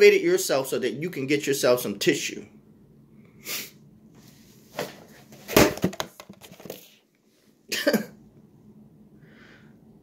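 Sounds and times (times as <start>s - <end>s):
man coughing: 7.7s - 8.2s.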